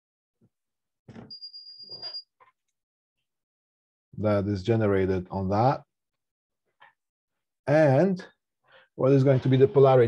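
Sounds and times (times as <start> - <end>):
marker squeaking on glass: 1.2 - 2.4.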